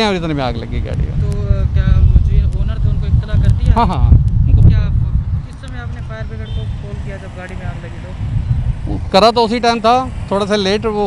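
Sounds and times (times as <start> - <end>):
road traffic rumble: 0.0 - 11.0
voices talking: 0.0 - 11.0.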